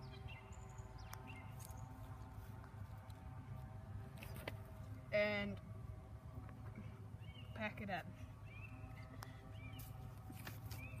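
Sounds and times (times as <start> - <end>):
bird chirping: 0.0 - 2.1, 7.2 - 11.0
low steady rumble: 0.0 - 11.0.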